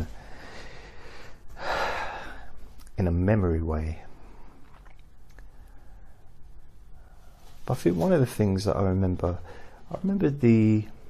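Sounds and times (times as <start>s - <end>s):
man breathing: 0.0s - 2.7s, 5.4s - 7.6s, 9.4s - 9.9s
man speaking: 2.9s - 4.2s, 7.6s - 11.0s.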